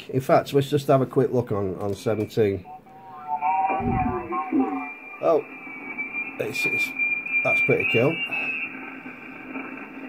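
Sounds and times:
steady whistling tones: 2.0 - 10.0
voice over shortwave radio: 3.7 - 5.4, 6.3 - 8.6.

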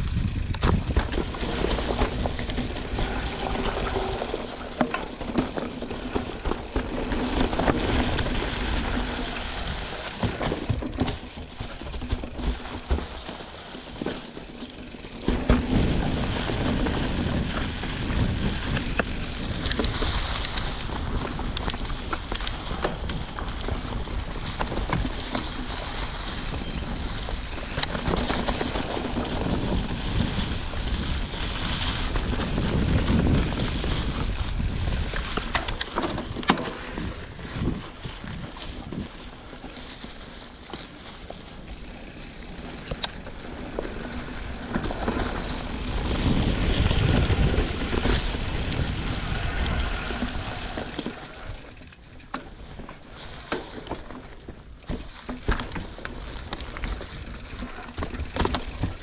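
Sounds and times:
wind noise on microphone: 0.0 - 13.4, 15.1 - 51.9
bike tyres rolling through dry leaves: 0.0 - 59.0.

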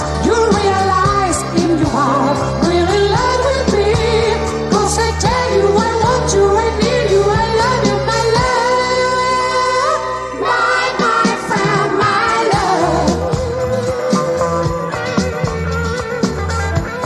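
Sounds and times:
man singing pop song: 0.0 - 4.3
band with bass and drums: 0.0 - 17.0.

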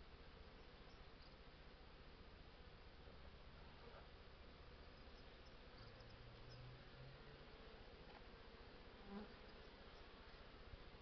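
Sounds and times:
honey bees buzzing: 4.6 - 11.0.

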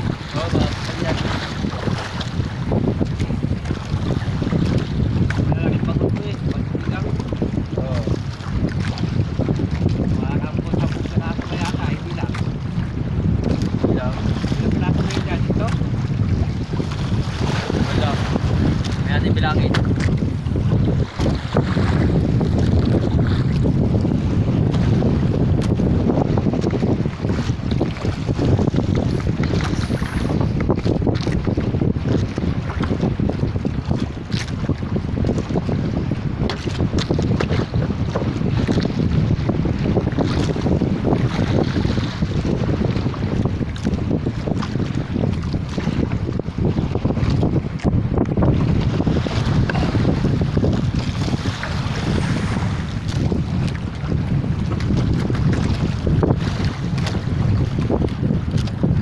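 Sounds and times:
water washing against boat hull: 0.0 - 59.0
wind buffeting microphone: 0.0 - 59.0.

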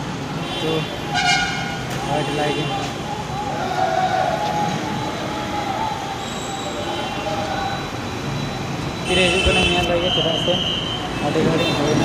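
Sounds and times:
street traffic roar: 0.0 - 12.0.

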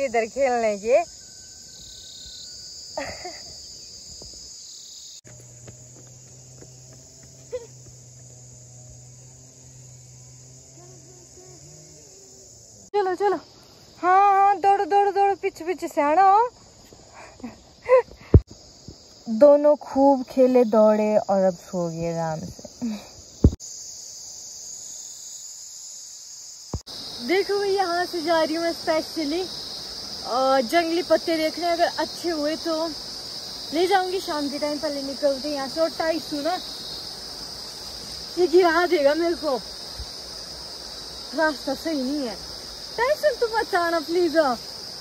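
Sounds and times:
insects chirring: 0.0 - 45.0.

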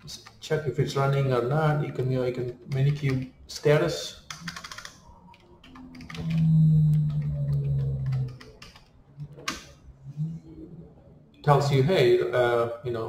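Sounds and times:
keyboard keystrokes: 4.3 - 9.7.

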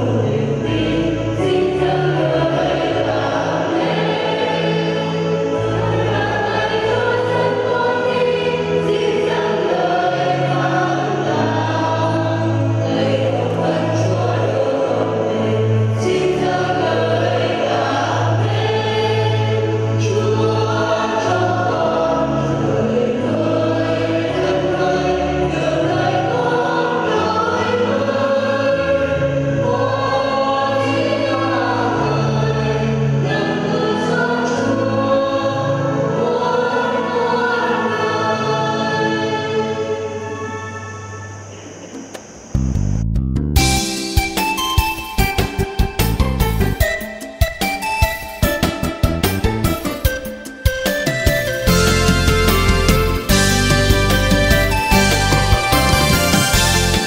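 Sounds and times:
choir singing a hymn: 0.0 - 42.5, 50.1 - 57.0
sustained low accompaniment: 39.6 - 44.2.

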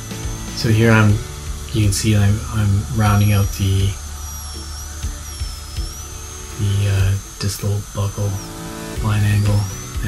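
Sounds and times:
dental drill high-pitched whine: 0.0 - 10.0.

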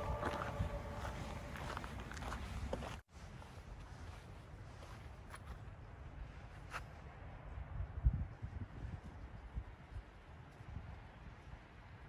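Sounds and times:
low microphone rumble: 0.0 - 3.0
footsteps on gravel trail: 0.0 - 5.7.

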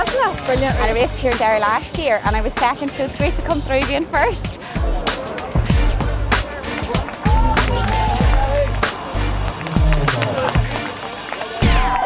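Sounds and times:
music with drum beat and bass: 0.0 - 11.0, 11.6 - 12.0.

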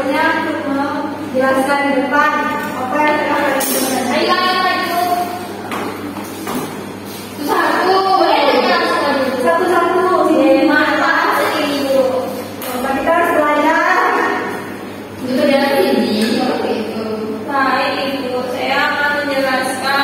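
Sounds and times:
woman speaking: 0.0 - 5.6, 7.3 - 20.0
women talking in a room: 0.0 - 20.0.

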